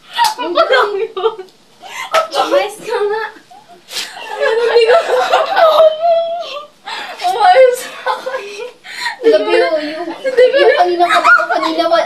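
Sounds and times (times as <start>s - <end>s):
women stifled laughter: 3.9s - 8.8s.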